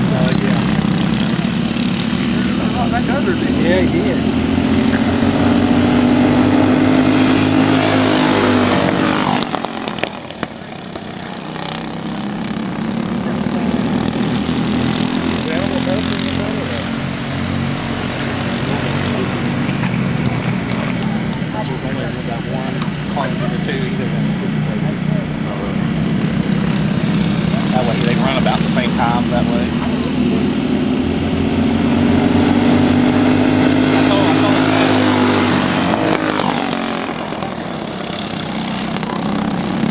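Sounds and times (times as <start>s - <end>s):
racing kart engines passing: 0.0s - 39.9s.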